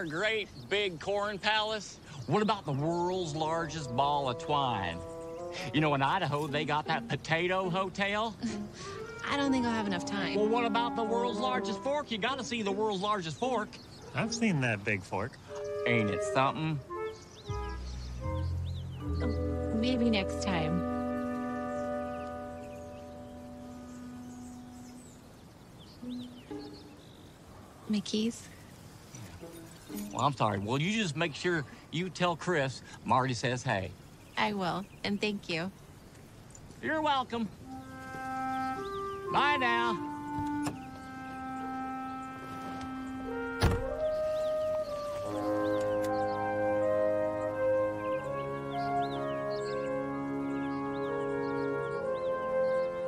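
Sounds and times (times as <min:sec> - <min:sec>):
birds chirping faintly: 0:00.0 - 0:53.0
soft background music: 0:02.3 - 0:27.3, 0:36.8 - 0:53.0
sustained film score chord: 0:02.4 - 0:28.3, 0:37.6 - 0:53.0
car door shutting: 0:40.2 - 0:41.0, 0:42.4 - 0:44.4.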